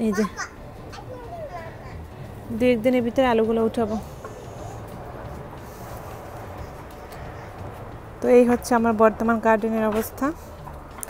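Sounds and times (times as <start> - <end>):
woman speaking: 0.0 - 0.4, 2.5 - 4.2, 8.2 - 10.4.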